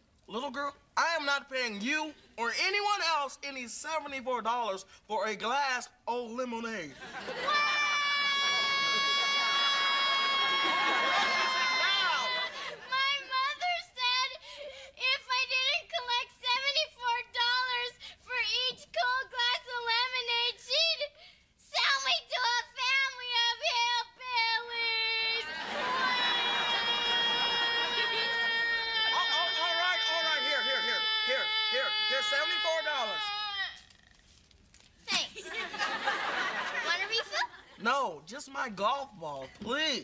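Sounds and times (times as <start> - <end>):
girl wailing in sing-song notes: 26.7 - 33.9.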